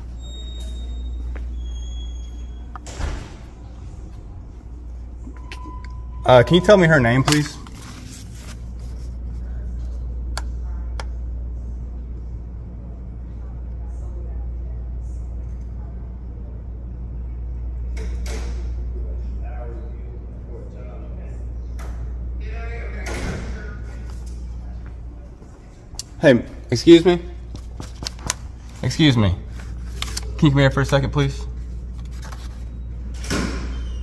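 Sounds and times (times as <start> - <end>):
muffled voices: 0.0 - 33.2
steady low hum: 0.0 - 34.0.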